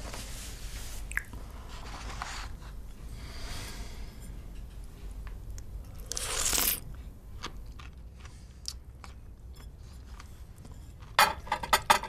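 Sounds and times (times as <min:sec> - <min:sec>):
person eating from bowl: 0:04.3 - 0:11.9.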